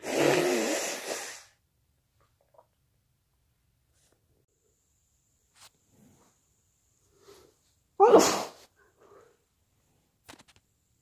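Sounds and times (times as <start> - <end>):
faint breaths: 7.0 - 7.8, 8.8 - 10.2
person sneezing: 8.0 - 8.7.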